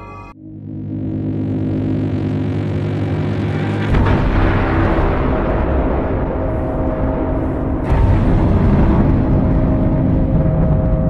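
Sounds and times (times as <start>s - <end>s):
dark cinematic music: 0.0s - 11.0s
deep continuous rumble: 0.0s - 11.0s
cinematic hit: 0.2s - 11.0s.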